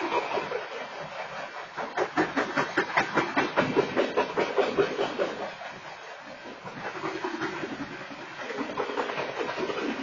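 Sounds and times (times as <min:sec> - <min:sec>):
train wheels clacking over rail joints: 0:00.0 - 0:10.0.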